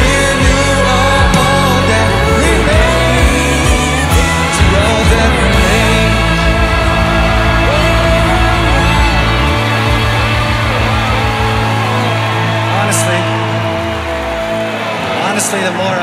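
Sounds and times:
person singing gliding notes: 0.0s - 15.7s
band holding sustained chords: 0.0s - 16.0s.

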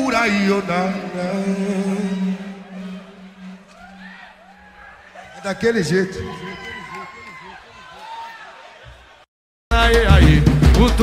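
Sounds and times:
wavering calls from crowd: 0.0s - 9.2s.

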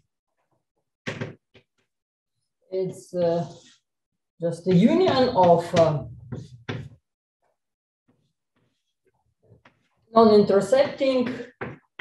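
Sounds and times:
chalk writing on blackboard: 3.4s - 3.8s, 6.3s - 6.9s.

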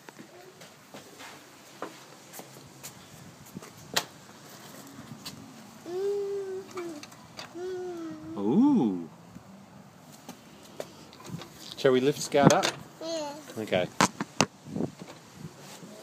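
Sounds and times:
footsteps: 0.0s - 5.5s.

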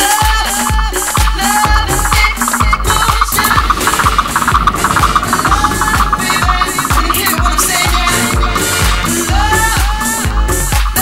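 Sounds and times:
fast-repeating high riff: 0.0s - 11.0s
kick drum: 0.0s - 11.0s
uptempo dance music: 0.0s - 11.0s.

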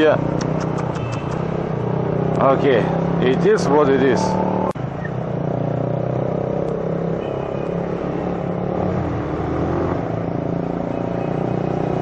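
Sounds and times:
road and wind noise: 0.0s - 12.0s
motorcycle engine running: 0.2s - 12.0s.

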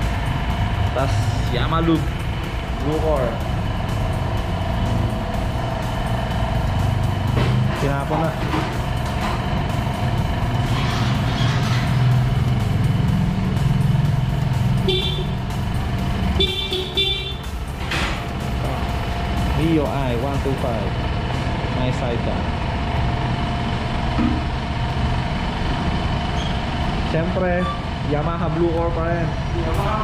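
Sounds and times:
motorcycle engine running: 0.0s - 30.0s
horn beeps: 14.8s - 15.6s, 16.2s - 17.6s.

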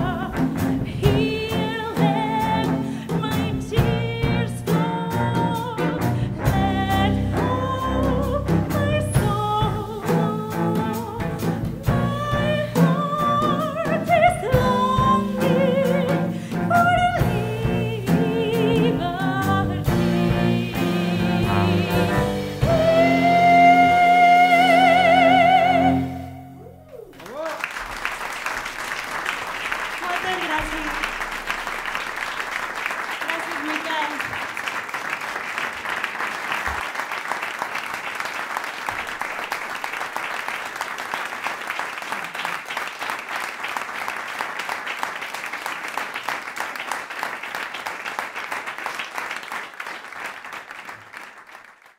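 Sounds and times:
audience applauding: 26.6s - 51.9s.

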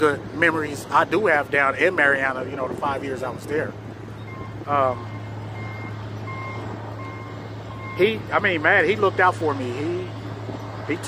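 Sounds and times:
reversing alarm beeping: 4.1s - 9.4s.

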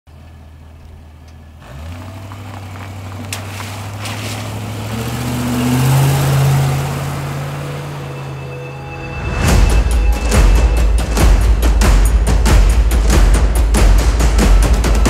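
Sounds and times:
car engine idling and accelerating: 0.1s - 15.0s
tyres on wet road: 0.1s - 15.0s.

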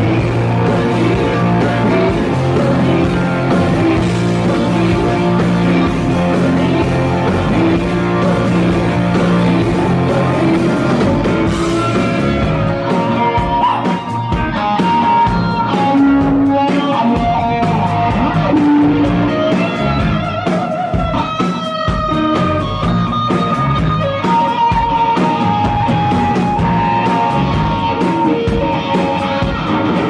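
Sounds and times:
bending guitar lead line: 0.0s - 30.0s
live rock band playing: 0.0s - 30.0s.

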